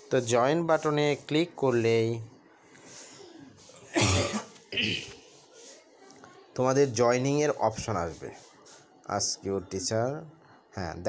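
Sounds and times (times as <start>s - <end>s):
man coughing: 3.9s - 5.2s.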